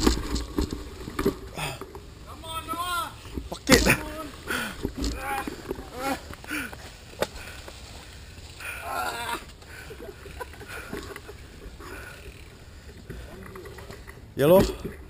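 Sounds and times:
bike tyres rumbling and rattling: 0.0s - 15.0s
voices calling out: 1.5s - 15.0s.

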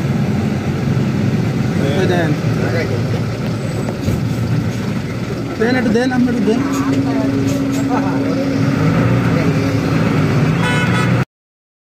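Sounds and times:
bus engine running: 0.0s - 11.3s
road noise: 0.0s - 11.3s
bus horn: 10.5s - 11.3s.

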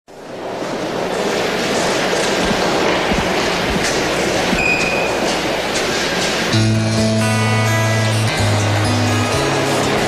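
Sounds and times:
steady rushing noise: 0.1s - 7.2s.

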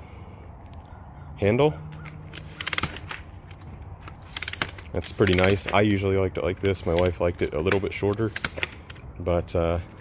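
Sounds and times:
stroller handlebar clicking: 2.0s - 9.0s.

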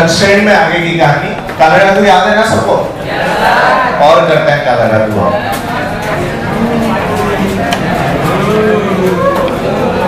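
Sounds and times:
students talking over one another: 3.0s - 4.1s.

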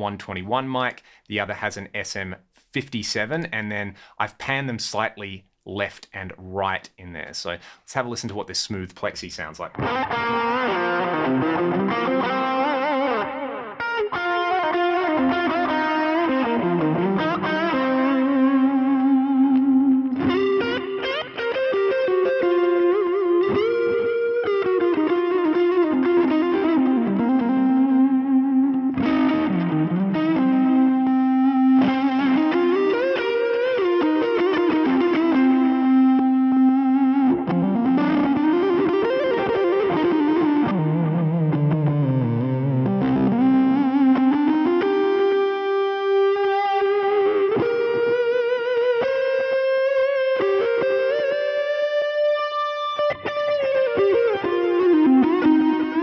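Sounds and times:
overdriven electric guitar lead: 9.6s - 56.0s.

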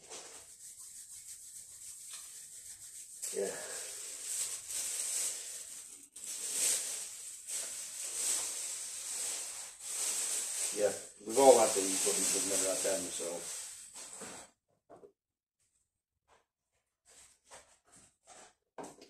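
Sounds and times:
hands scraping on countertop: 0.0s - 4.7s, 8.3s - 14.5s, 17.1s - 18.6s.

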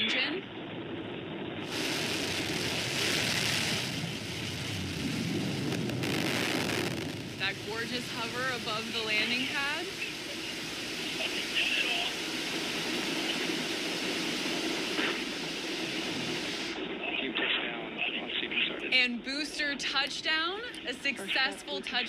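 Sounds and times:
rocket engine roaring: 0.0s - 22.0s
voices: 7.4s - 13.8s, 16.8s - 22.0s.

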